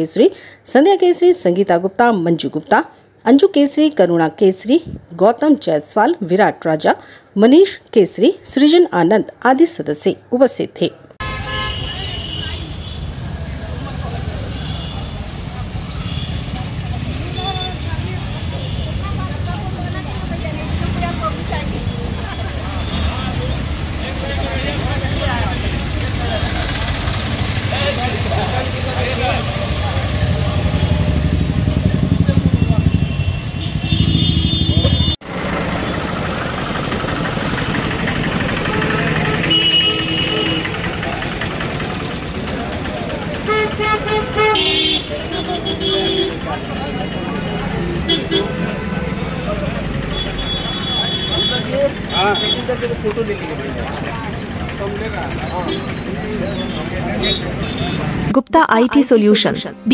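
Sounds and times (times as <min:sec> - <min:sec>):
motorcycle and traffic engines: 0:10.9 - 0:59.9
vehicle horn honks: 0:11.2 - 0:13.2, 0:14.5 - 0:16.7, 0:22.4 - 0:23.6, 0:32.4 - 0:35.2, 0:38.6 - 0:41.0, 0:43.4 - 0:49.0, 0:50.0 - 0:52.8, 0:55.6 - 0:58.2
people's voices: 0:11.8 - 0:33.3, 0:38.2 - 0:59.9.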